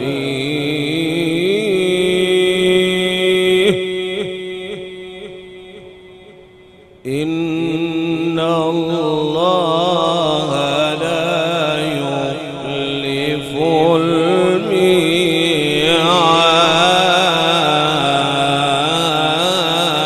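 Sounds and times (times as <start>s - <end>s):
man reciting in melodic chant: 0.0s - 20.0s.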